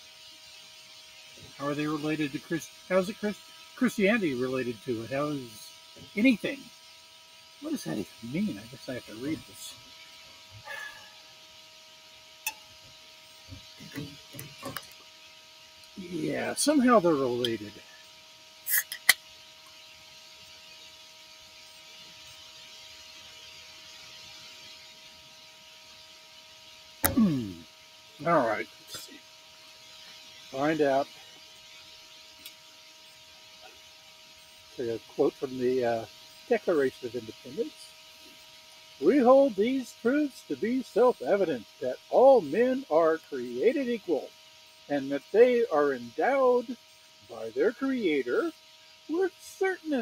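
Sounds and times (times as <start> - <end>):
electrical hum: 0.0 - 50.0
faint hiss: 0.0 - 50.0
faint steady high whine: 0.0 - 50.0
sharp click: 18.7 - 19.2
person muttering: 27.0 - 27.6.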